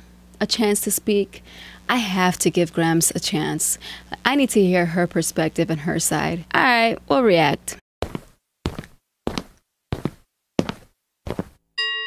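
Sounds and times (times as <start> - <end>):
footstep thuds: 8.0 - 11.6.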